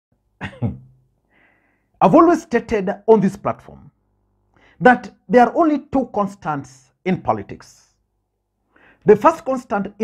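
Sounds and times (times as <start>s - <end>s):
man coughing: 0.4s - 0.9s.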